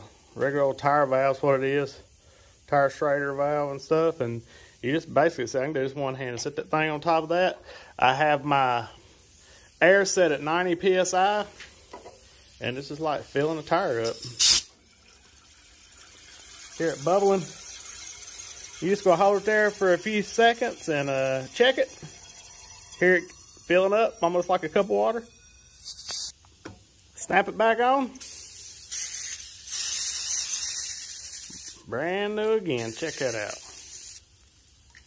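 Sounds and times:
compressed air hiss: 0:00.0 - 0:05.2, 0:07.6 - 0:14.8, 0:25.8 - 0:26.5, 0:28.1 - 0:34.6
faint bubbling in a can: 0:00.1 - 0:35.0
aerosol can spraying hiss: 0:11.5 - 0:14.8, 0:25.8 - 0:26.5, 0:28.2 - 0:31.9, 0:32.7 - 0:34.7.

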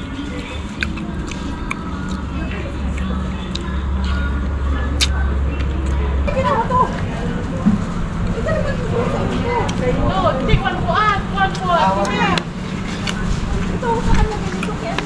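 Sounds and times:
background voices: 0:00.0 - 0:15.0
low steady hum: 0:00.0 - 0:15.0.

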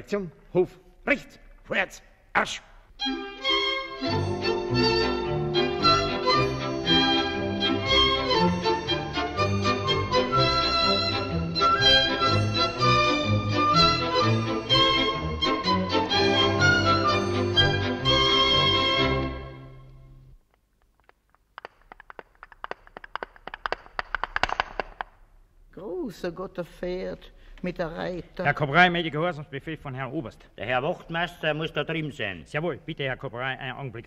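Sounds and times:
violins: 0:03.0 - 0:20.0
orchestra playing: 0:03.0 - 0:20.2.

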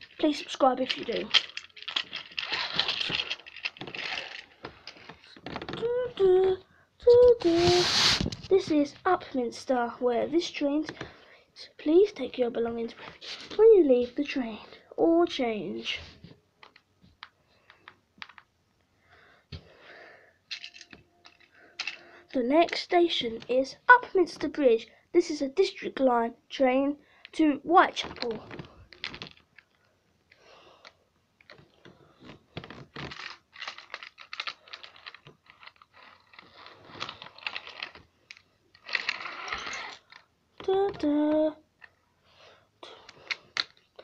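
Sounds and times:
plastic toy pieces clicking: 0:00.0 - 0:05.0, 0:20.5 - 0:22.0, 0:33.0 - 0:40.3
breathy sound: 0:21.4 - 0:22.3.

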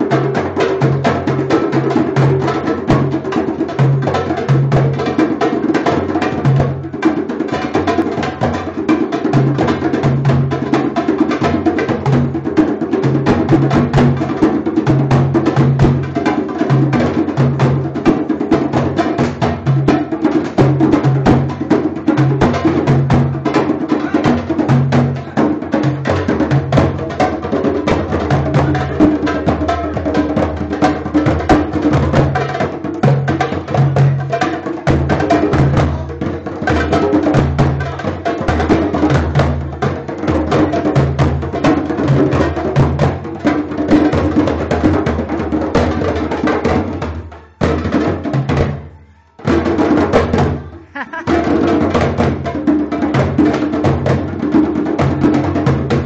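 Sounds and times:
group playing hand drums: 0:00.0 - 0:56.0.

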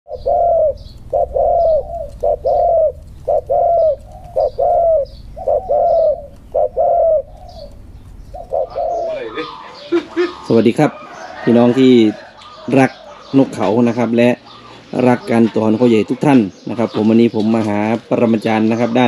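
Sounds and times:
dove cooing: 0:00.1 - 0:19.0.

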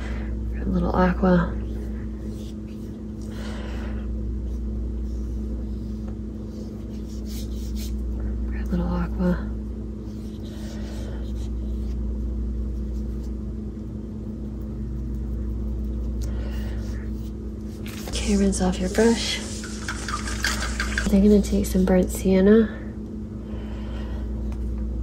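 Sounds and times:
low background hum: 0:00.0 - 0:25.0.

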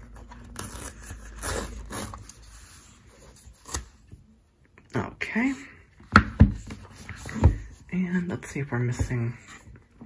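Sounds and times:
tape tearing: 0:00.2 - 0:02.7
fingernails scraping paper tape: 0:00.5 - 0:02.8.

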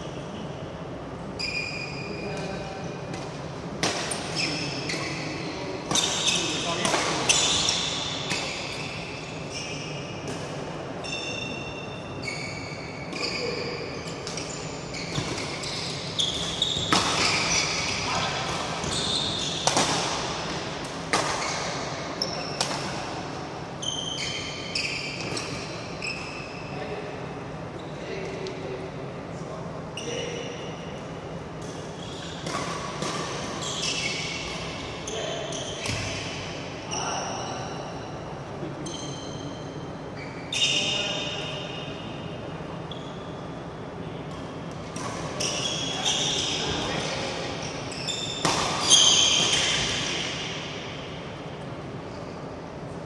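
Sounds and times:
racket striking shuttlecock: 0:03.1 - 0:04.2, 0:19.5 - 0:21.7
shoes squeaking on court: 0:03.9 - 0:10.4, 0:11.0 - 0:20.6, 0:21.2 - 0:22.9, 0:23.8 - 0:26.6, 0:31.6 - 0:36.3, 0:44.9 - 0:50.5.

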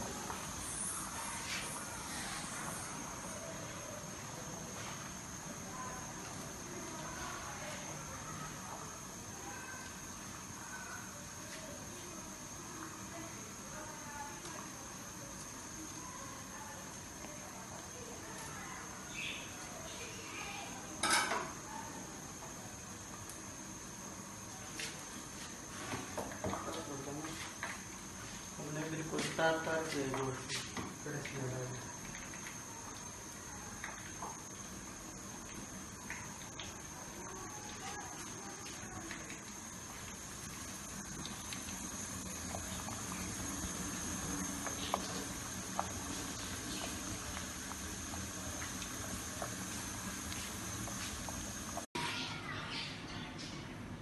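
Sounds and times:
food sizzling on a stove: 0:00.0 - 0:53.6.

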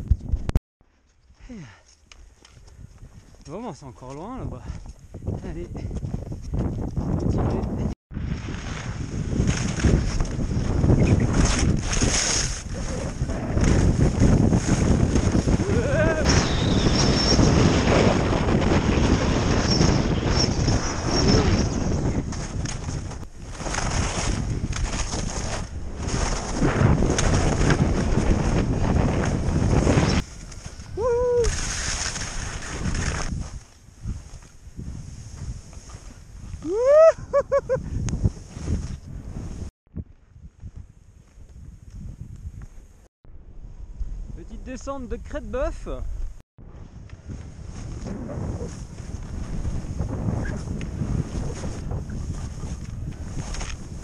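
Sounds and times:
wind buffeting microphone: 0:02.2 - 0:54.0.

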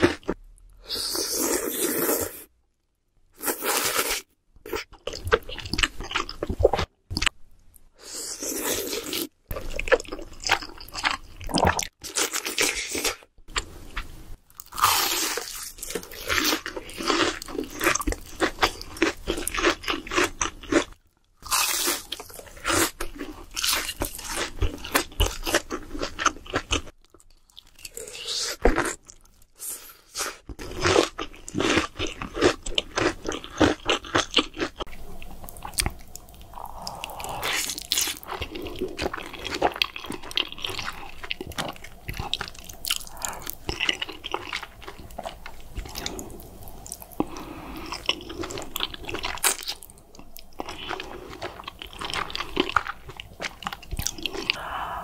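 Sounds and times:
soft chewing: 0:04.7 - 0:55.0
crunching fried food: 0:14.5 - 0:29.4, 0:30.1 - 0:54.6.

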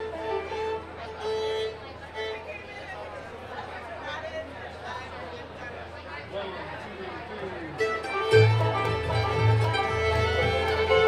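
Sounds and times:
mandolin playing: 0:00.0 - 0:01.6, 0:07.8 - 0:11.0
fiddle playing long notes: 0:00.0 - 0:02.8, 0:07.7 - 0:11.0
people talking: 0:00.0 - 0:11.0.

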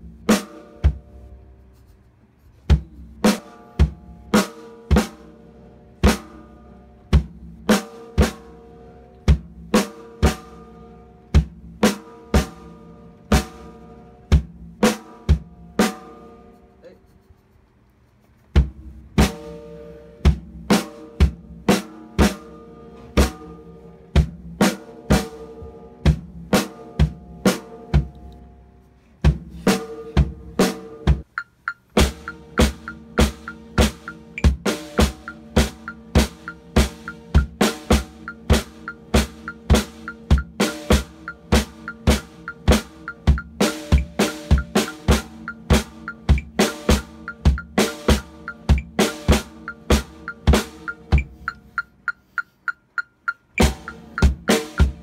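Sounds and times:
drum kit playing: 0:00.0 - 0:01.3, 0:02.6 - 0:16.4, 0:18.5 - 0:28.2, 0:29.2 - 0:55.0.

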